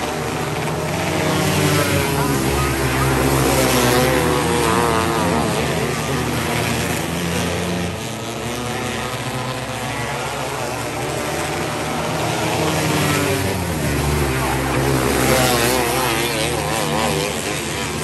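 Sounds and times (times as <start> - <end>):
race car engines revving: 0.0 - 18.0.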